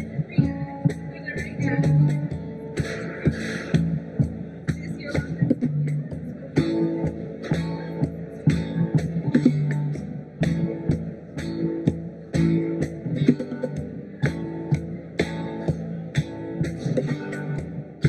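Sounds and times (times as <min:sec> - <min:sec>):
live band playing: 0:00.0 - 0:18.0.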